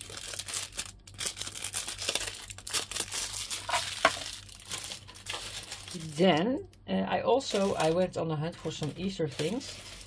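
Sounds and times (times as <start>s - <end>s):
plastic wrappers crinkling: 0.0s - 6.6s, 7.4s - 10.0s.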